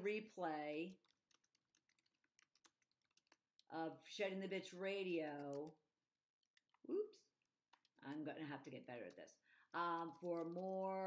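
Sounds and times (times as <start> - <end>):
faint keyboard typing: 0.4 - 3.7, 4.7 - 5.8, 6.4 - 6.9, 7.7 - 11.0.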